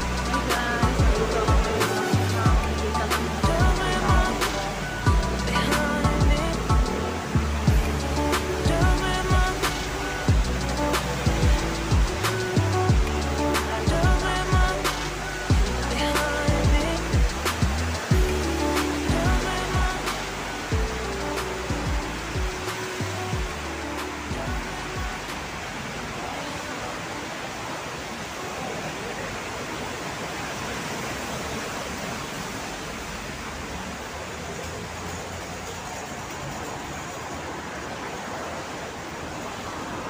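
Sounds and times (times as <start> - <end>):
background music with steady beat: 0.0 - 26.9
steady rushing noise: 0.0 - 40.0.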